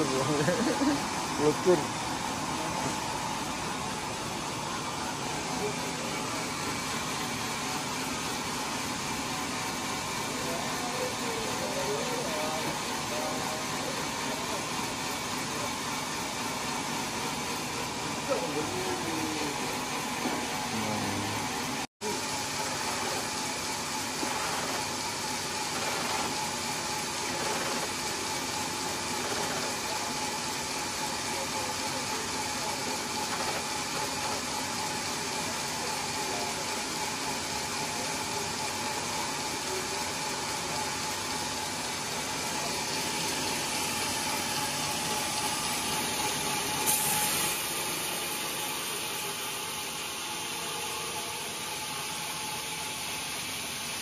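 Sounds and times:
band sawmill whining hum: 0.0 - 54.0.

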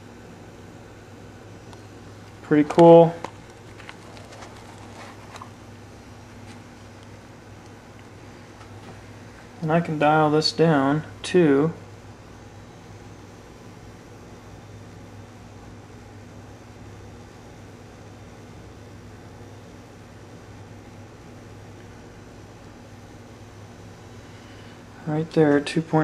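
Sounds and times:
low electrical hum: 0.0 - 26.0.

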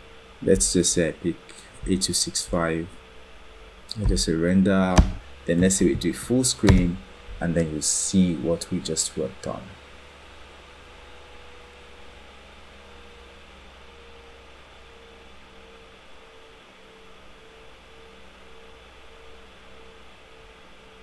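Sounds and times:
microphone hiss: 0.0 - 10.3
low electrical hum: 0.0 - 21.0.

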